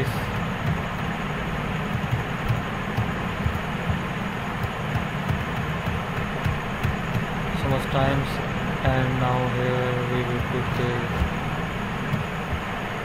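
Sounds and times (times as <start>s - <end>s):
steady rumbling: 0.0s - 13.0s.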